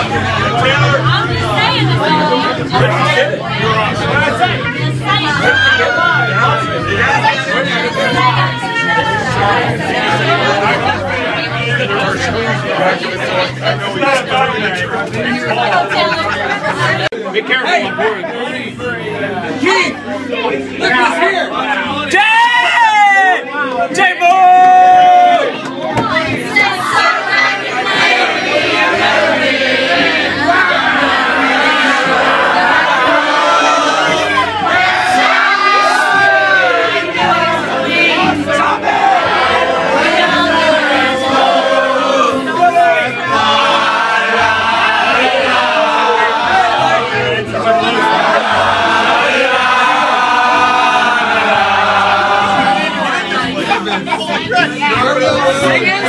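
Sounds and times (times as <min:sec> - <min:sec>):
crowd singing and shouting: 0:00.0 - 0:56.0
people talking over one another: 0:00.0 - 0:56.0.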